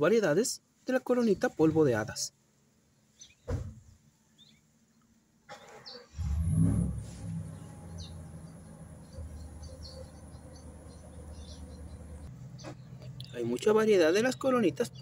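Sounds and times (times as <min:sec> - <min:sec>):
low steady motor hum: 0:06.5 - 0:15.0
faint bird chirps: 0:07.4 - 0:15.0.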